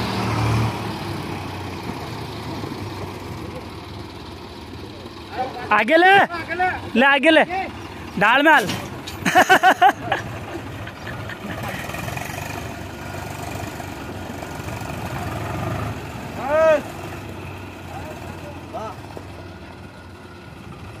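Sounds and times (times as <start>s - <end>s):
tractor diesel engines running: 0.0s - 21.0s
person shouting: 16.4s - 16.9s.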